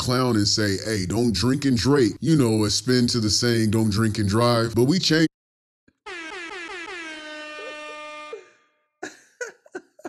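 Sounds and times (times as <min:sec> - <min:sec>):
brassy tone sliding down in pitch: 0:06.0 - 0:08.6.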